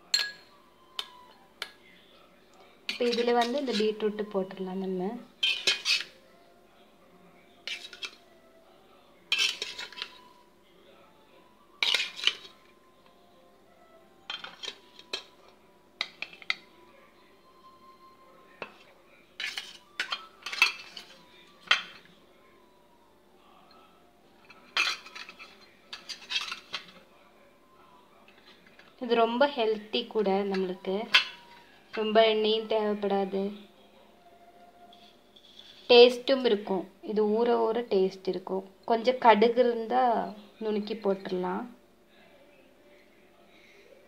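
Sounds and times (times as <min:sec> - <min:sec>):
spoon scraping ceramic bowl: 0:02.9 - 0:04.0, 0:05.4 - 0:06.2, 0:07.6 - 0:08.2, 0:09.3 - 0:10.3, 0:11.8 - 0:12.6, 0:14.3 - 0:15.4, 0:19.4 - 0:22.1, 0:24.5 - 0:27.0, 0:34.9 - 0:35.9.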